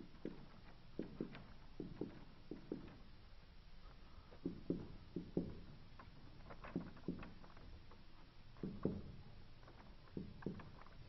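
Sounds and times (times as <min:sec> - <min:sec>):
low room hum: 0:00.0 - 0:11.0
marker pen on whiteboard: 0:04.2 - 0:07.4.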